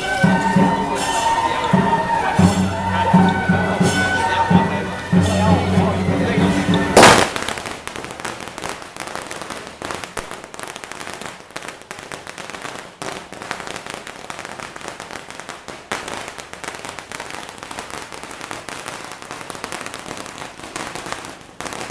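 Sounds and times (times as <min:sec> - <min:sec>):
firecrackers crackling: 0:00.0 - 0:21.9.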